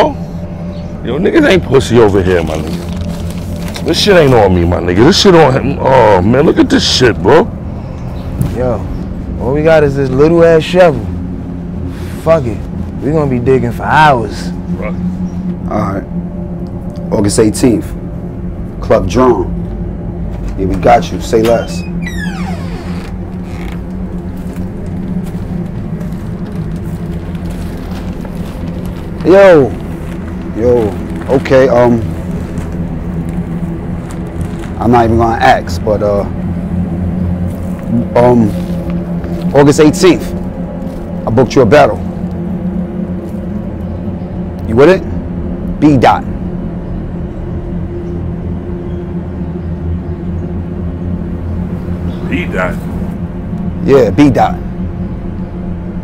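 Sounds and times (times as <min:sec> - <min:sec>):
low drone with held tones: 0:00.0 - 0:56.0
steady low hum: 0:00.0 - 0:56.0.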